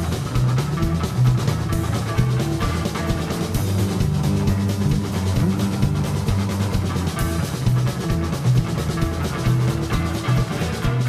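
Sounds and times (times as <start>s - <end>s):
drum kit steady beat: 0.0s - 11.0s
electric bass line: 0.0s - 11.0s
electric guitar: 0.0s - 11.0s.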